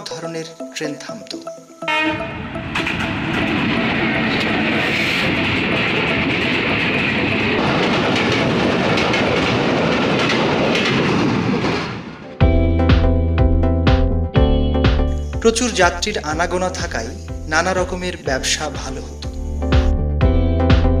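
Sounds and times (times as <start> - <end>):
freight train rumbling past: 1.4 - 13.4
wheels clicking over rail joints: 5.4 - 11.9.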